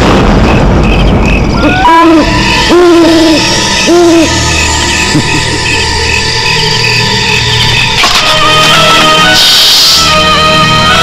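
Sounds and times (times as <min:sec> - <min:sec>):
eerie sustained music: 0:00.0 - 0:11.0
owl hooting: 0:01.6 - 0:04.4.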